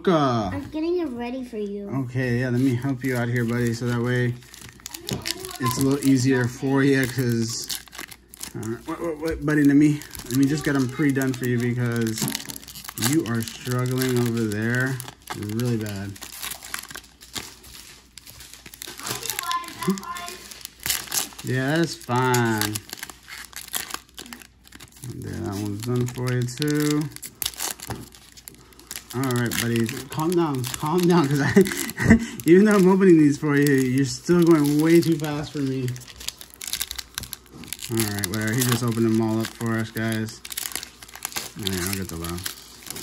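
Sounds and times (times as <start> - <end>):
person speaking: 0.0 - 7.8, 8.5 - 16.2, 18.9 - 20.6, 21.4 - 23.0, 24.9 - 27.3, 28.6 - 36.2, 37.7 - 40.5
foil wrappers crinkling: 2.3 - 43.0.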